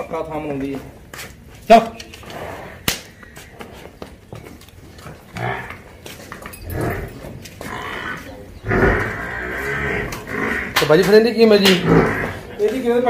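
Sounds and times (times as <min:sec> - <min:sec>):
water buffalo calling: 0:06.6 - 0:10.9, 0:11.7 - 0:12.6.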